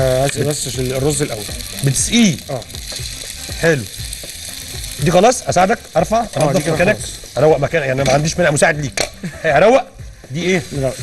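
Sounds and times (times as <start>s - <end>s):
liquid sizzling in hot pan: 0.0s - 11.0s.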